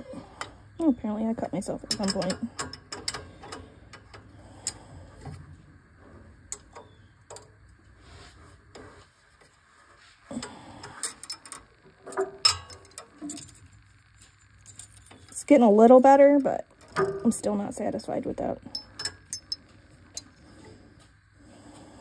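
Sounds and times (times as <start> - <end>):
wrenches clinking on metal: 11.0 - 13.6, 18.7 - 20.3.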